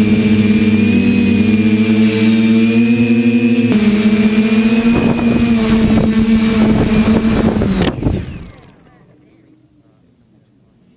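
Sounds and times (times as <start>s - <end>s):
quadcopter propellers whirring: 0.0s - 9.2s.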